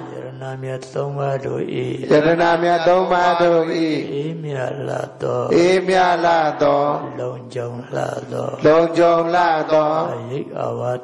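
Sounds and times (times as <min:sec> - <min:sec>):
person chanting melodically: 0:00.0 - 0:11.0.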